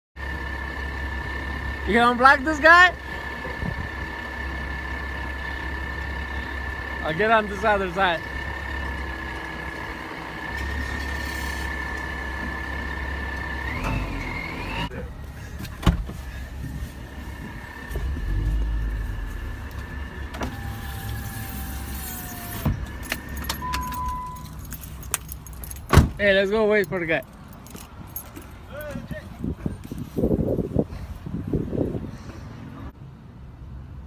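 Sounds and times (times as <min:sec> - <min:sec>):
truck engine rumbling: 0:00.2 - 0:34.0.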